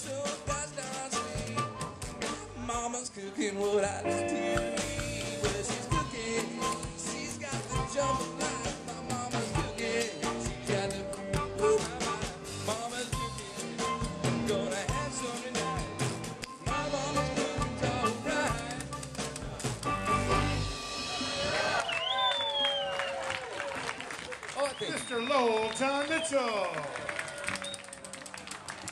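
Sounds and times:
blues band playing live: 0.0s - 3.0s, 3.6s - 21.9s.

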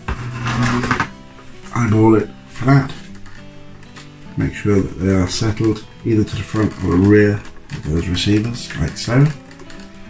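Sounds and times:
model plane scraping on table: 0.0s - 1.1s
background music: 0.0s - 10.0s.

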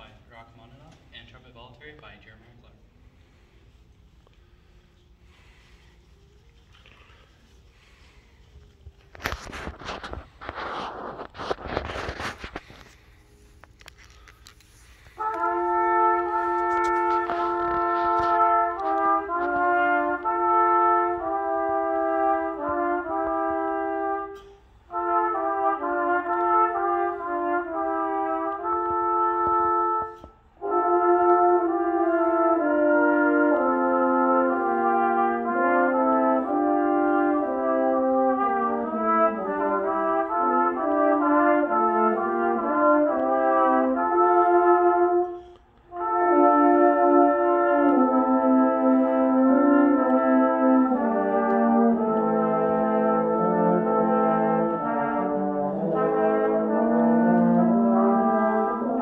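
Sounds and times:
brass quintet playing chords: 2.2s - 59.0s.

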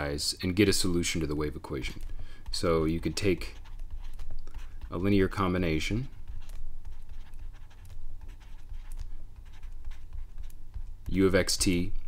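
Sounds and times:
low steady hum: 0.0s - 12.0s
stylus scratching and tapping on tablet: 0.4s - 12.0s.

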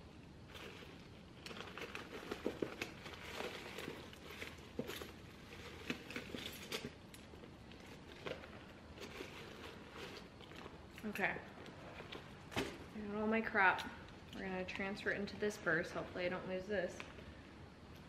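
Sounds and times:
rustling and crinkling: 0.0s - 16.3s.

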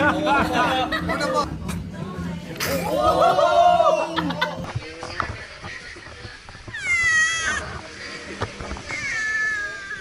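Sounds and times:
cat meowing: 6.7s - 7.7s, 8.9s - 10.0s.

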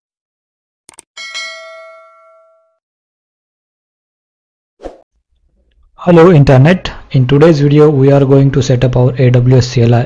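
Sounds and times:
bright bell ding: 1.2s - 2.8s.

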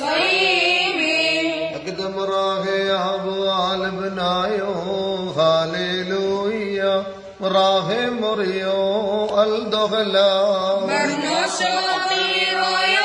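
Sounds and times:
person chanting a hymn: 0.0s - 13.0s.

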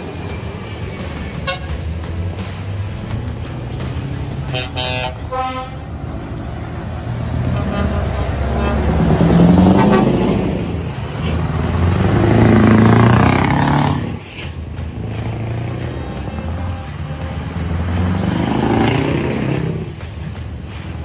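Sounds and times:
diesel trucks pulling away: 0.0s - 21.0s.

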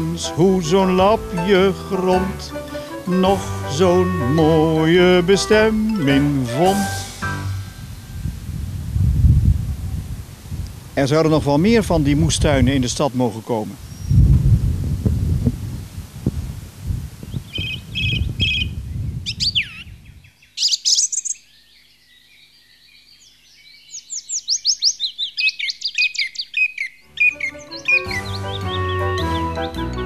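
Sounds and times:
music: 0.0s - 8.2s, 27.1s - 30.0s
songbird singing: 0.0s - 9.0s, 10.7s - 16.0s, 17.2s - 30.0s
low outdoor rumble: 3.4s - 19.2s.

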